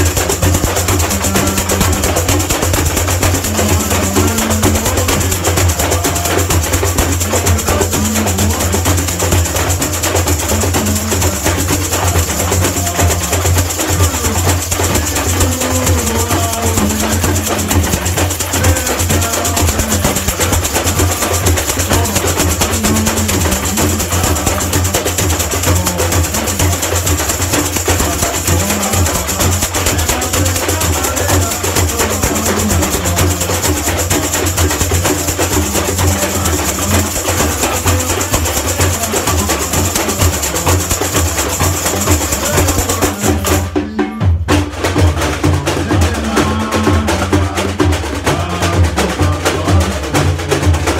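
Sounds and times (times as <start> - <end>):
metal shakers: 0.0 - 43.7
bass drums: 0.0 - 50.9
small frame drums: 0.0 - 50.9.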